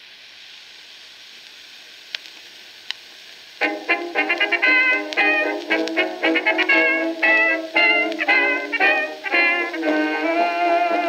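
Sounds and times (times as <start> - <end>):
record surface hiss: 0.0 - 11.0
dance band music: 3.6 - 11.0.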